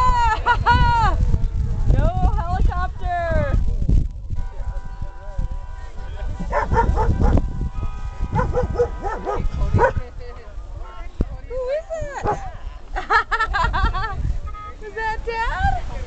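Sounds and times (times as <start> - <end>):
wind rumble on microphone: 0.0 - 16.0
people talking: 9.1 - 12.8, 13.6 - 16.0.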